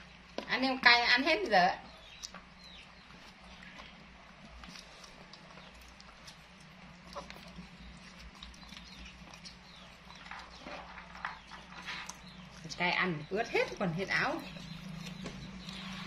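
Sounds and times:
monkeys chewing fruit: 0.0s - 16.0s
steady low hum: 0.0s - 16.0s
woman's voice: 0.5s - 1.9s, 12.7s - 14.5s.

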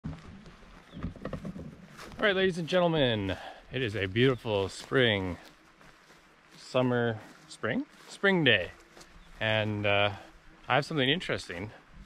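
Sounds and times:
soft knocks and rustles: 0.1s - 2.2s.

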